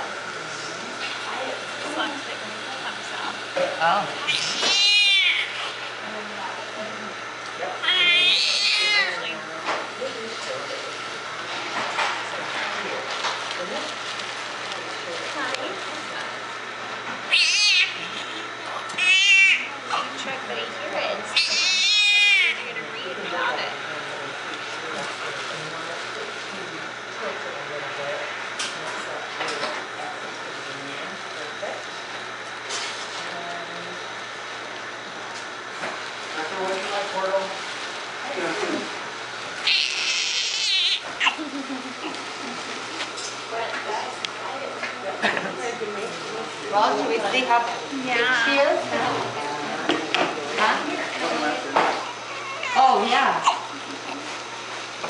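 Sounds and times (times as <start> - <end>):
newborn baby crying: 39.7 - 41.0.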